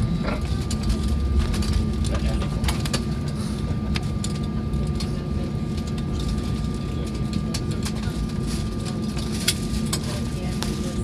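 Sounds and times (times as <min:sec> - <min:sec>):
aircraft cabin rumble: 0:00.0 - 0:11.0.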